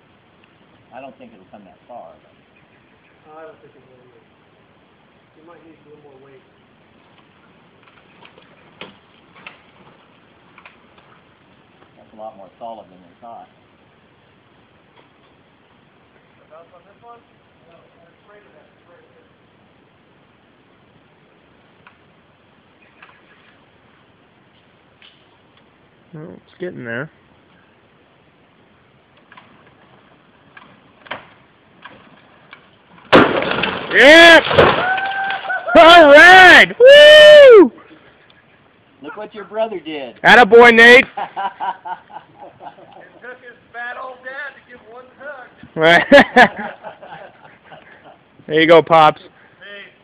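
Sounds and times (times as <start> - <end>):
faint sharp wood cracks: 7.1 - 11.2, 22.8 - 23.6, 24.5 - 25.8, 29.1 - 35.6.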